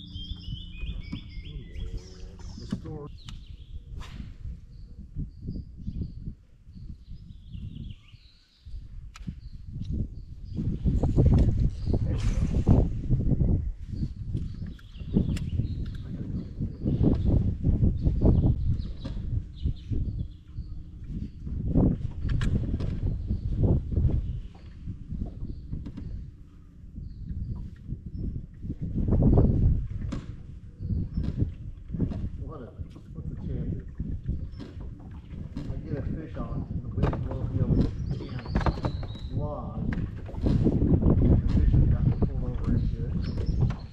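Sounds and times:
faint bird chirps: 0:00.0 - 0:03.9
wind buffeting microphone: 0:00.0 - 0:43.9.

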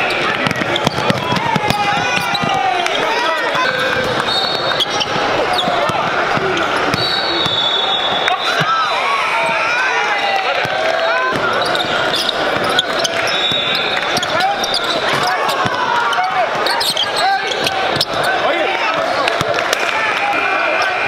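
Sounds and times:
voices calling and chattering: 0:00.0 - 0:21.0
basketball bouncing on hardwood: 0:00.3 - 0:02.6.

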